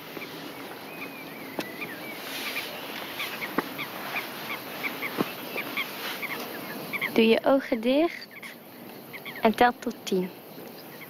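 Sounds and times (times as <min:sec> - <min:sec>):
steady outdoor hiss: 0:00.0 - 0:11.0.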